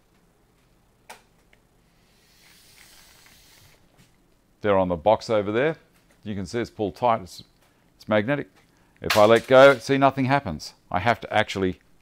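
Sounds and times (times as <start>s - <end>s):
tape measure blade sliding out: 2.2s - 3.8s.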